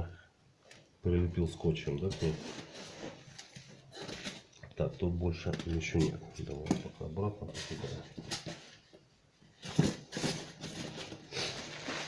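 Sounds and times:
packing material rustling in box: 0:09.6 - 0:12.0.

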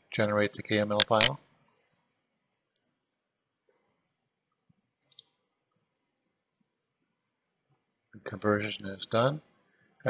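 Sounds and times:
faint clicks: 0:05.0 - 0:05.4.

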